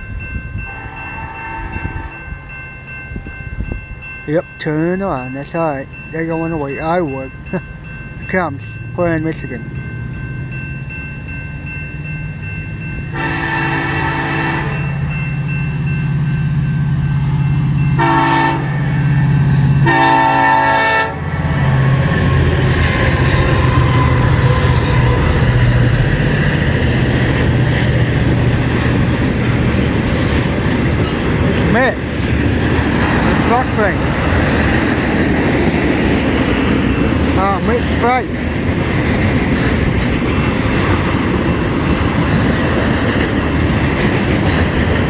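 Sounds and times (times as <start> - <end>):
diesel locomotive engines droning: 0.0 - 45.0
wheels rumbling on rail: 0.0 - 45.0
train air horn blasts: 0.7 - 2.2, 13.1 - 14.9, 18.0 - 19.0, 19.8 - 21.3.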